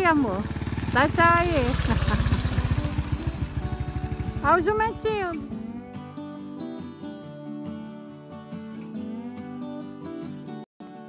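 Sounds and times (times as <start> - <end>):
small motorcycle engine passing: 0.0 - 5.8.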